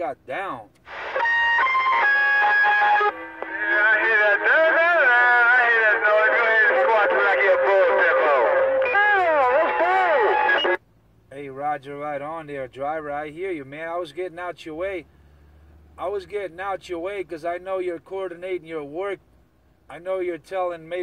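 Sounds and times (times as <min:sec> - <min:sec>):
electronic tones over radio: 0:02.6 - 0:10.8.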